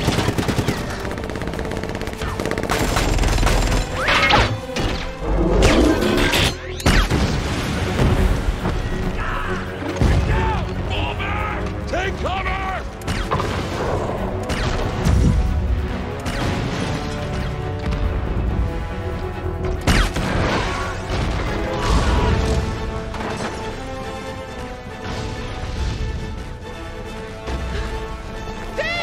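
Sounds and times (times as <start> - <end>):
automatic gunfire: 0.0 - 4.0
man shouting: 9.2 - 12.8, 28.7 - 29.0.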